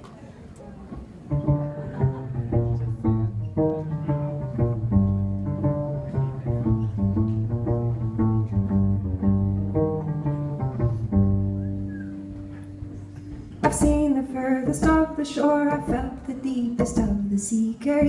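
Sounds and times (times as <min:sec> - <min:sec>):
cello playing: 0:01.3 - 0:17.3.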